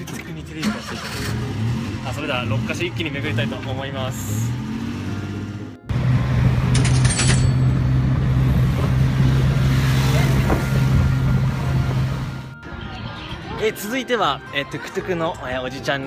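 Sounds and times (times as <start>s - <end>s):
vehicle engine droning: 0.0s - 12.6s
traffic noise: 0.0s - 16.0s.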